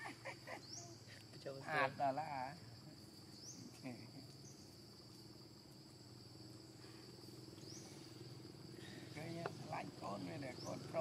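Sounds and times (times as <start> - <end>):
drone of forest insects: 0.0 - 11.0.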